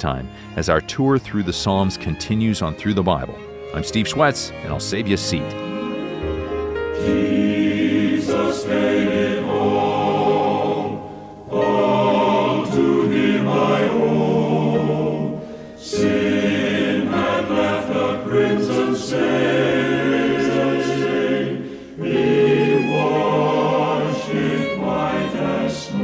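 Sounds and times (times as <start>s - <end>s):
choir singing: 1.1s - 26.0s.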